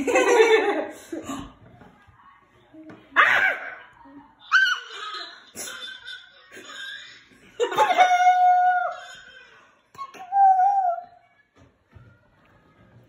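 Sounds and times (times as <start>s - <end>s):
adults laughing and talking: 0.0s - 1.7s.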